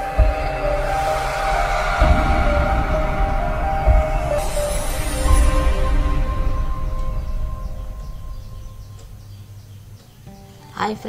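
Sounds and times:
deep bass hit: 0:00.0 - 0:09.7
cinematic synth music: 0:00.0 - 0:10.1.

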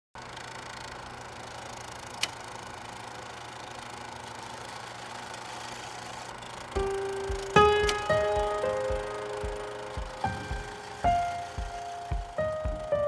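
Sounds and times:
faint machine hum: 0:00.2 - 0:13.0.

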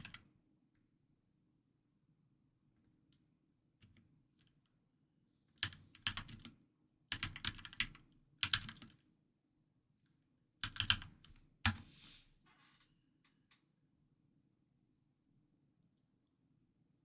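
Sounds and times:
typing on computer keyboard: 0:00.0 - 0:00.3, 0:05.6 - 0:09.0, 0:10.6 - 0:11.8.

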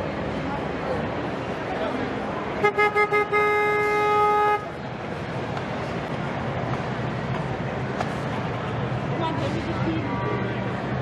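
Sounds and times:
horn blasts: 0:02.6 - 0:04.8.

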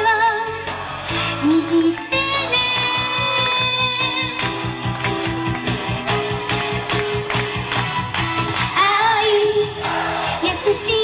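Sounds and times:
pop backing music with beat: 0:00.0 - 0:11.0.

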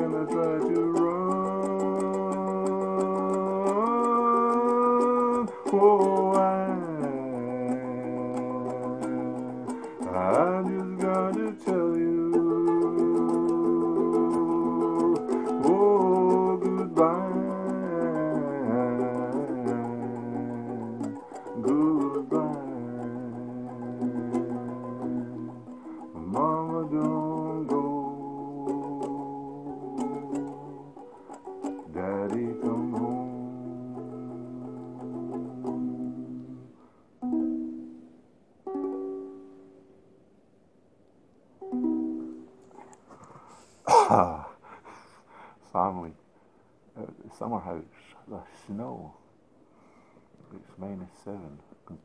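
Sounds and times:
man singing: 0:00.0 - 0:31.1, 0:31.7 - 0:36.8, 0:43.9 - 0:44.6
strummed ukulele: 0:00.0 - 0:40.1, 0:41.6 - 0:44.6.

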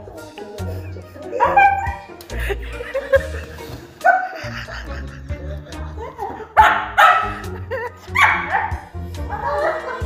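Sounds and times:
background music: 0:00.0 - 0:10.0
small dog barking: 0:06.6 - 0:07.4, 0:08.2 - 0:08.8.

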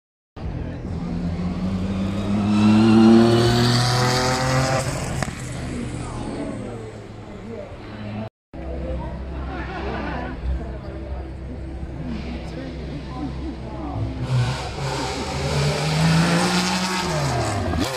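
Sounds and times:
race car accelerating past: 0:01.0 - 0:05.9.

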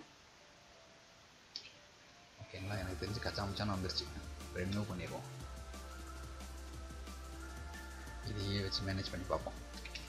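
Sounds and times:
man speaking: 0:02.6 - 0:05.4, 0:08.2 - 0:09.6.

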